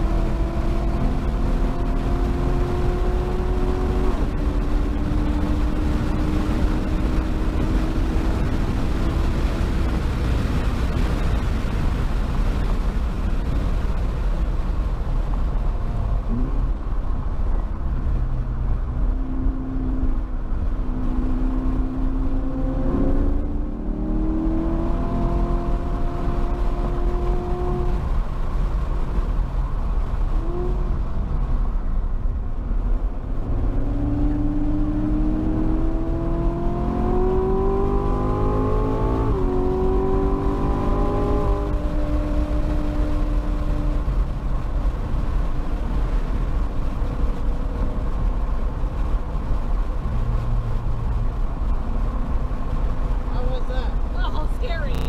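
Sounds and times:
car engine revving in cabin: 0.0 - 10.6, 15.8 - 31.8, 32.8 - 45.2, 49.0 - 55.0
road and wind noise: 0.0 - 55.0.

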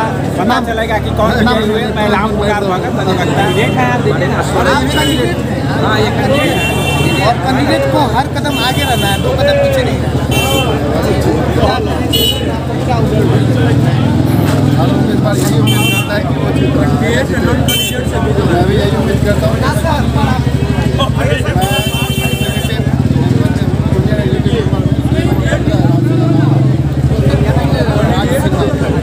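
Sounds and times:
crowd babble: 0.0 - 29.0
man talking: 0.0 - 29.0
vehicle engine running: 0.0 - 29.0.

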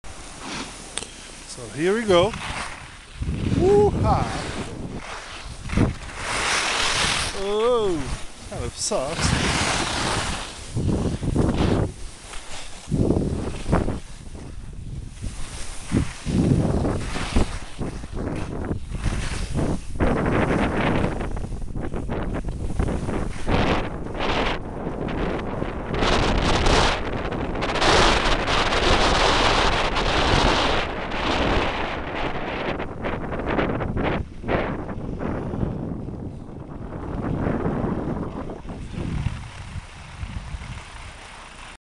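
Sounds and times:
wind buffeting microphone: 0.0 - 41.7
skis scraping over snow: 0.1 - 41.8.

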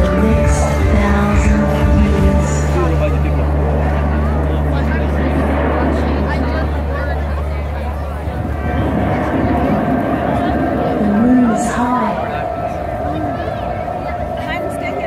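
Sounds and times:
crowd chatter: 0.0 - 15.0
low held drone over loudspeakers: 0.0 - 15.0.

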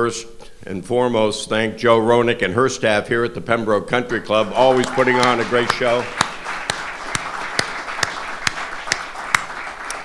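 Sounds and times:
crowd applauding: 4.5 - 10.0
close loud hand claps: 4.7 - 10.0.

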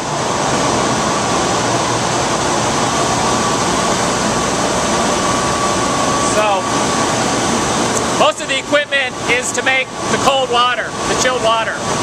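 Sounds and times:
faint high whine: 0.0 - 12.0
machinery drone and hiss: 0.0 - 12.0.

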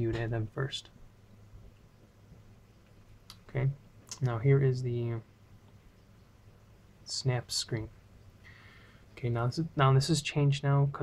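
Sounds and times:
man speaking: 0.0 - 1.0, 3.4 - 5.3, 7.0 - 8.0, 9.2 - 11.0.

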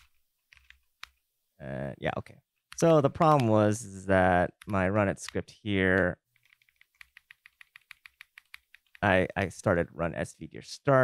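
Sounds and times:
keyboard keys clicking: 0.0 - 1.2, 6.4 - 9.5.

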